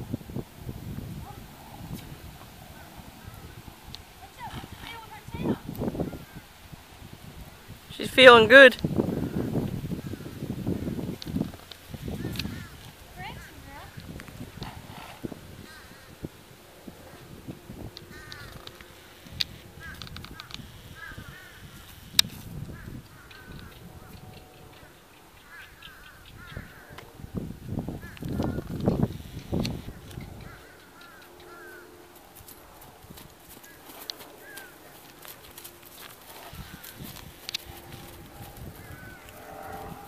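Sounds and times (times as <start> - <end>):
birds calling: 1.2 - 6.7, 7.6 - 40.0.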